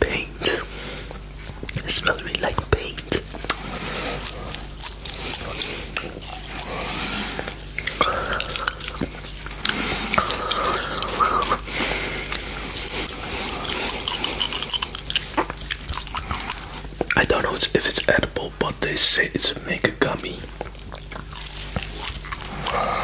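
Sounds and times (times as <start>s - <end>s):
wet mouth sounds: 0.0s - 18.8s, 20.1s - 23.0s
chewing gummy candy: 0.1s - 23.0s.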